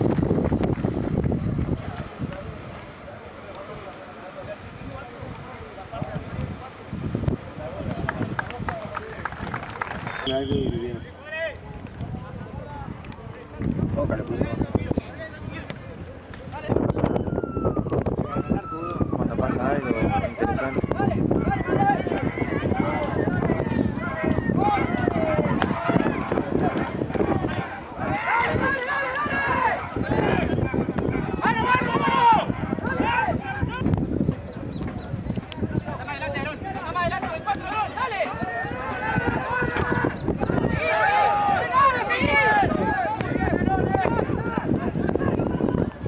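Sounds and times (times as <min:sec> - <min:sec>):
sharp hand claps: 0:07.8 - 0:10.7
people shouting: 0:20.1 - 0:33.8, 0:36.7 - 0:45.8
people calling out: 0:36.2 - 0:45.9.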